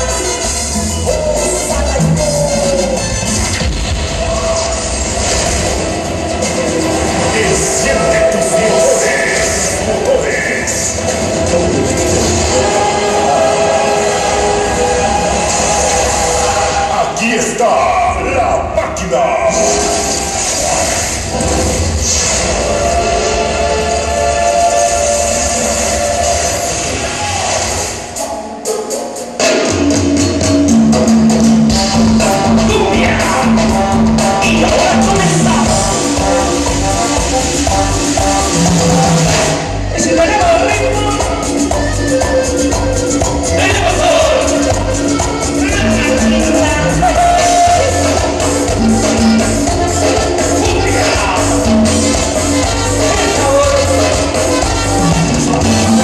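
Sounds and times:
live band playing loud chords: 0.0s - 18.8s, 19.4s - 56.0s.

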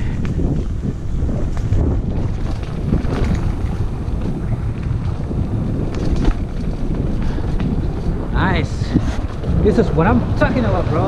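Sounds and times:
bike clicks and rattles: 0.0s - 11.0s
bike tyres rolling over dirt: 0.0s - 11.0s
wind buffeting microphone: 0.0s - 11.0s.

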